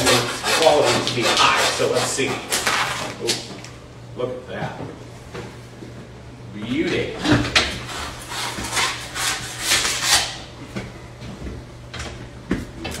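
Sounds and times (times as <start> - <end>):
meat scraping and rubbing: 0.0 - 3.4, 7.8 - 10.5
steady low hum: 0.0 - 13.0.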